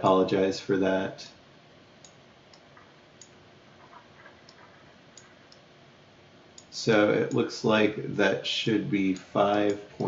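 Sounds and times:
low steady hiss: 0.0 - 10.0
faint clicks: 2.0 - 5.7.

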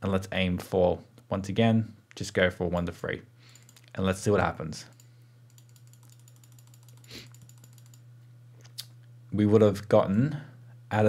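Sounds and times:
low steady hum: 0.0 - 11.0
keyboard clicking: 5.5 - 8.0.

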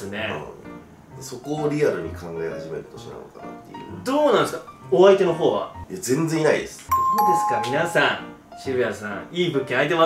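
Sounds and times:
background music: 0.0 - 10.0
two-note doorbell chime: 6.9 - 8.3.

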